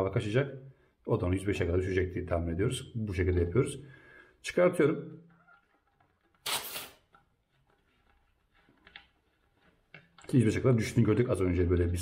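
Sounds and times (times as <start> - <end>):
air hissing from tyre valve: 6.4 - 7.0.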